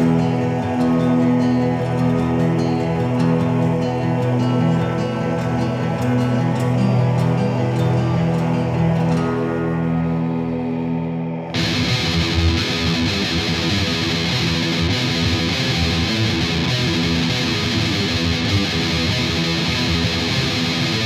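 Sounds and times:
held ringing guitar chord: 0.0 - 21.0
metal band with distorted guitars: 0.0 - 21.0.

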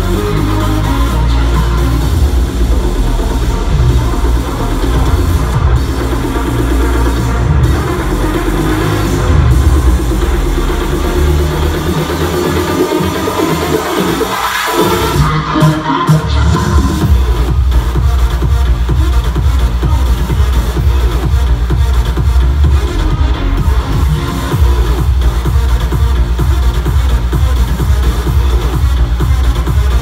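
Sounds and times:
house music with heavy bass: 0.0 - 30.0.

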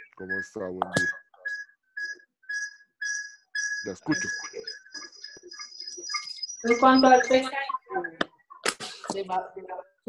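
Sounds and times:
thin whistle-like tone: 0.0 - 7.9
woman's choppy voice on video call: 6.6 - 8.3, 9.0 - 10.0.

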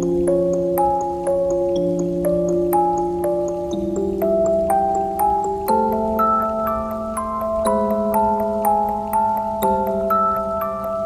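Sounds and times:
music box melody: 0.0 - 11.0.

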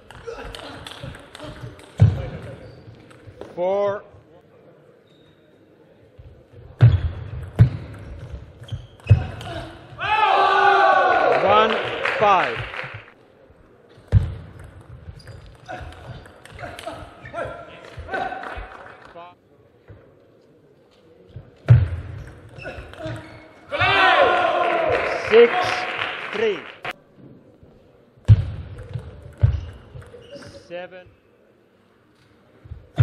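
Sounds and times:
people shouting: 9.4 - 11.4, 23.7 - 25.1.

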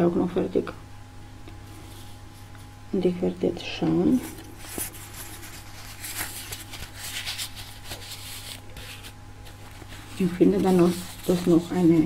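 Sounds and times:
steady low hum: 0.0 - 12.0
fabric rustling and scratching: 4.1 - 12.0.

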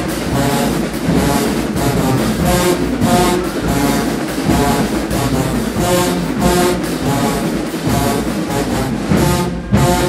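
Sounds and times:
drums: 0.0 - 10.0
marching band brass chords: 0.0 - 10.0.

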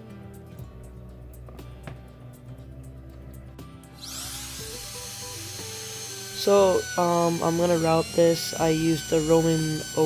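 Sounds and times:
background music: 0.0 - 10.0
trim router whining: 4.0 - 10.0.

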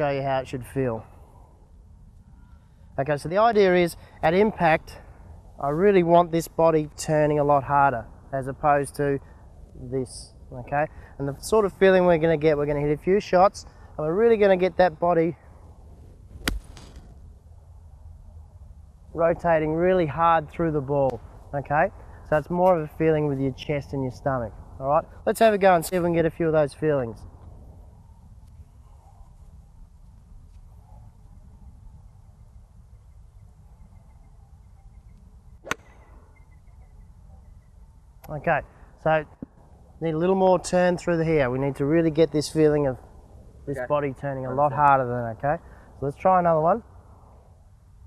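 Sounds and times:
low outdoor rumble: 0.0 - 48.0
golf club striking ball: 16.4 - 17.0, 35.6 - 36.2.

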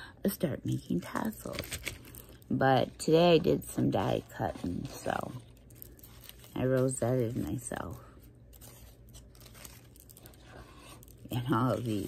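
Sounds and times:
soft paper crackles: 0.6 - 12.0
paper rustling and crinkling: 0.7 - 12.0.

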